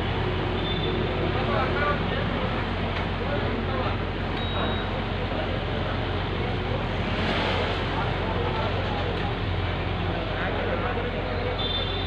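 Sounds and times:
diesel engine humming: 0:00.0 - 0:12.0
street noise: 0:00.0 - 0:12.0.

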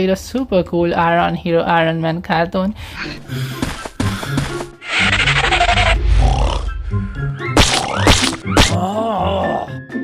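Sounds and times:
cartoon background music: 0:03.0 - 0:10.0
hissing cartoon sound effect: 0:04.8 - 0:06.5
noisy cartoon sound effect: 0:04.8 - 0:06.5.

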